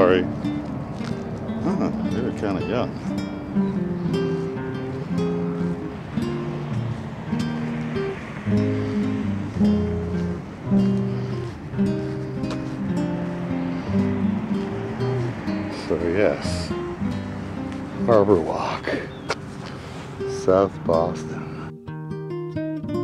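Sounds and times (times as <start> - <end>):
acoustic guitar music: 0.0 - 23.0.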